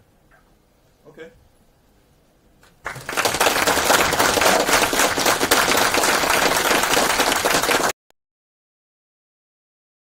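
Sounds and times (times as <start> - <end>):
audience applauding: 2.8 - 8.0.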